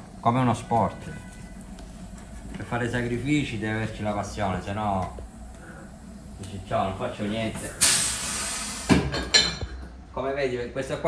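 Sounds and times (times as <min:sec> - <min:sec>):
compressed air hiss: 0:05.6 - 0:09.2.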